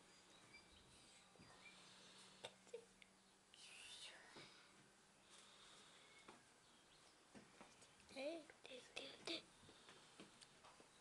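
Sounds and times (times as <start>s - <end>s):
person whispering: 3.5s - 4.7s, 8.1s - 9.5s.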